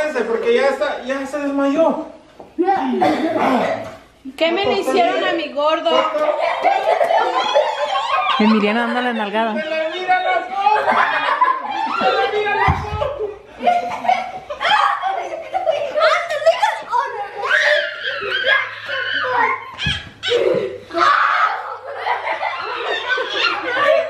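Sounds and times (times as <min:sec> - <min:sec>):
children and adults laughing: 0:05.9 - 0:24.0.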